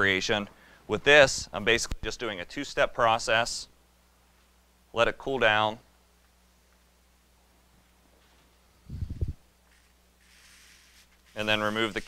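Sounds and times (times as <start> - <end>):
foil sheet rustling: 9.7 - 12.0.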